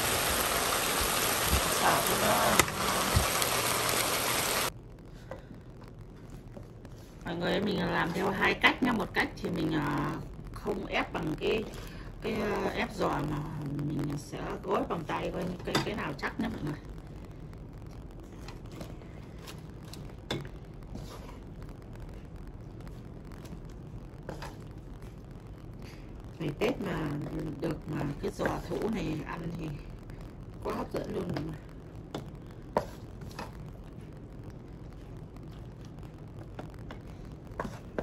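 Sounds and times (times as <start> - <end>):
meat sizzling in a hot pan: 0.0 - 4.7
steady low hum: 0.0 - 38.0.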